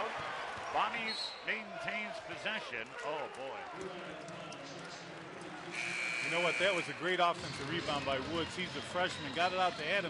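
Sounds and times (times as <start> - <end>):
referee's whistle blast: 5.8 - 6.9.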